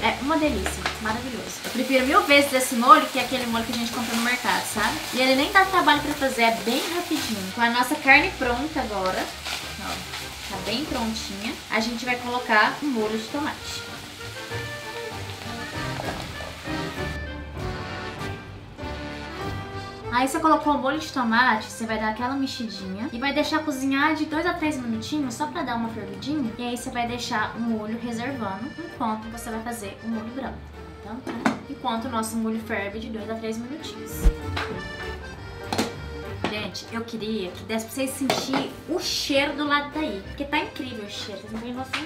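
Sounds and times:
background music sustained notes: 0:00.0 - 0:42.0.

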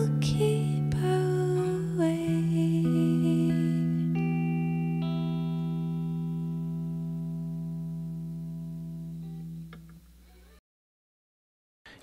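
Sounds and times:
clean electric guitar chord ringing: 0:00.0 - 0:10.6
guitar strings damped with click: 0:02.3 - 0:10.6.

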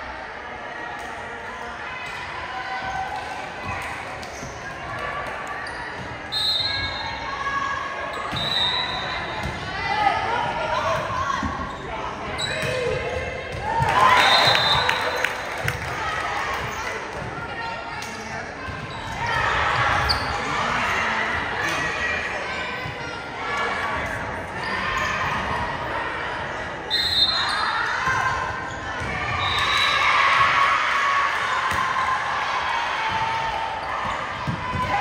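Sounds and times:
players and spectators shouting: 0:18.5 - 0:35.0.

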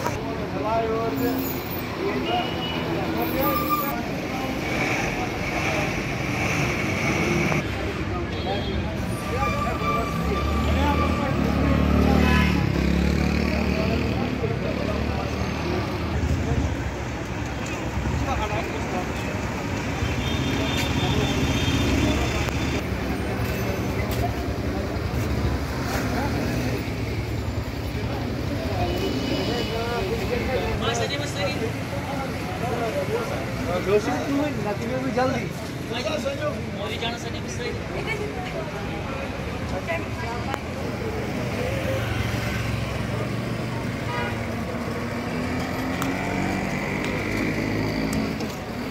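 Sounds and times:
vehicles driving past: 0:00.0 - 0:08.2, 0:08.9 - 0:48.9
people's voices: 0:00.0 - 0:48.9.

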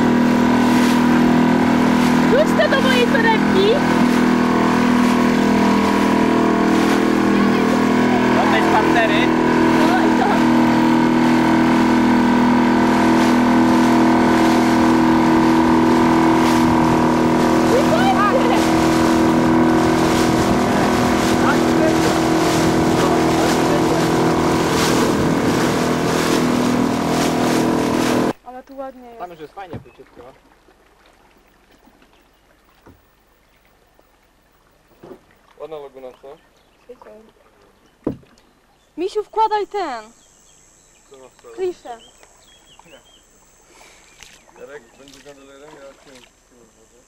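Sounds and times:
water and wind rushing: 0:00.0 - 0:40.2
outboard motor running: 0:00.0 - 0:47.0.

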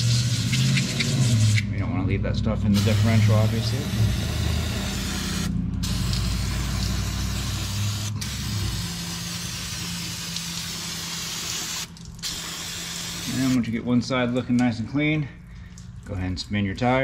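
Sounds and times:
aerosol spray hissing: 0:02.8 - 0:13.6.

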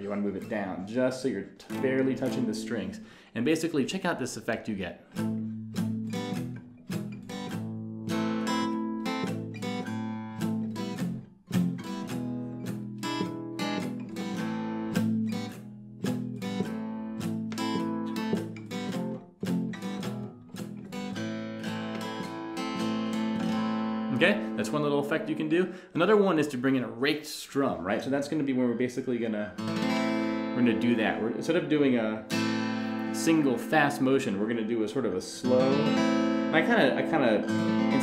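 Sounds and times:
palm-muted acoustic guitar strumming: 0:01.6 - 0:03.2, 0:05.0 - 0:25.8, 0:29.2 - 0:38.0.

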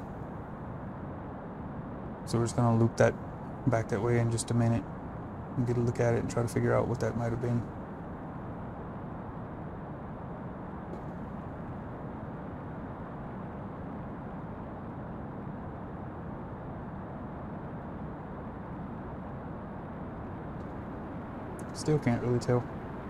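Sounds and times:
steady rushing noise: 0:00.0 - 0:23.0.

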